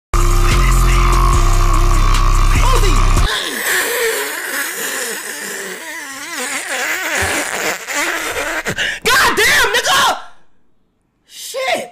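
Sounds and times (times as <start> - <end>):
man making wavering vocal noises: 0.2 - 8.8.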